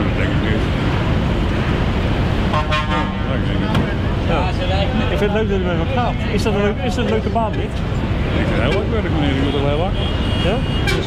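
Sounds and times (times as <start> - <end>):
low rumble of traffic: 0.0 - 11.0
vehicle horn toot: 2.5 - 3.2, 9.4 - 11.0.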